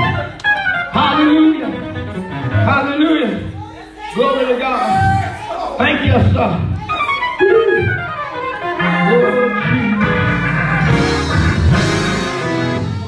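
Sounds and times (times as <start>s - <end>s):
organ falling run of notes: 7.4s - 13.0s
organ sustained chords: 7.4s - 13.0s.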